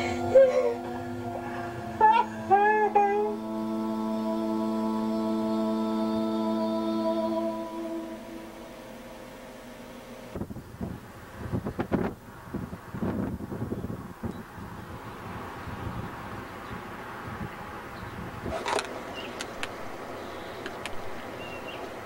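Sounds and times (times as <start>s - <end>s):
held music tones: 0.0s - 12.0s.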